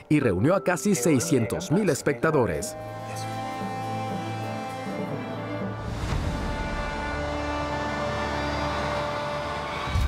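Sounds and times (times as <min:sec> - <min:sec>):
sustained high tones: 0:00.4 - 0:04.2.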